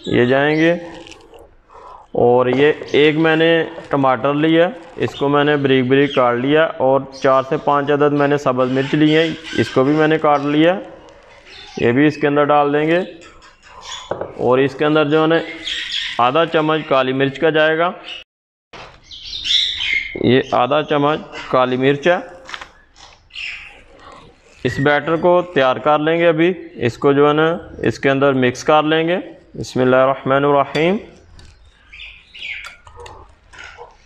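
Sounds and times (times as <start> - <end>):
bird calling: 7.2 - 16.7, 19.0 - 27.9, 31.2 - 34.0
whisk scraping a glass bowl: 13.2 - 14.1.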